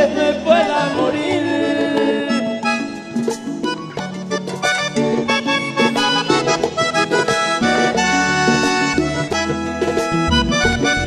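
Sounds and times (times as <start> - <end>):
person singing: 0.0 - 2.8
accordion: 0.0 - 11.0
percussion: 0.0 - 11.0
bass line: 3.6 - 11.0.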